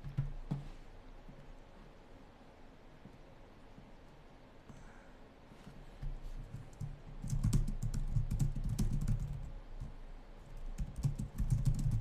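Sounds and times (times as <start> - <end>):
typing on computer keyboard: 0.0 - 0.6, 6.5 - 9.9, 10.6 - 12.0.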